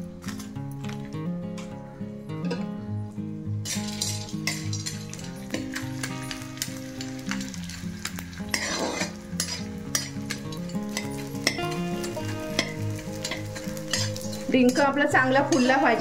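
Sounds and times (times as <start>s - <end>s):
gum sizzling in hot oil: 3.6s - 16.0s
spatula clinking against pan: 9.4s - 11.7s.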